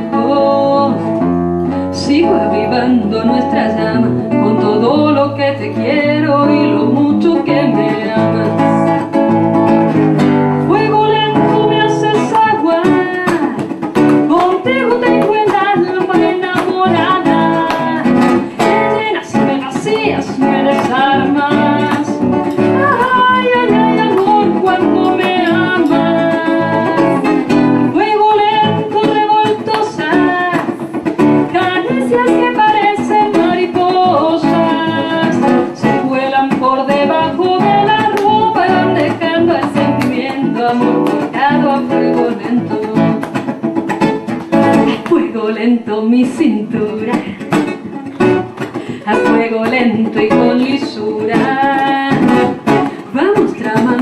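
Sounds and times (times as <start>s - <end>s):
classical guitar fingerstyle: 0.0s - 54.0s
woman singing: 0.0s - 54.0s.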